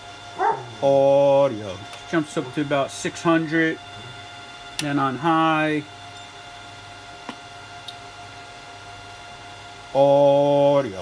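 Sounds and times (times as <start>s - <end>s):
faint high whine: 0.0s - 6.5s
electrical hum and hiss: 0.0s - 11.0s.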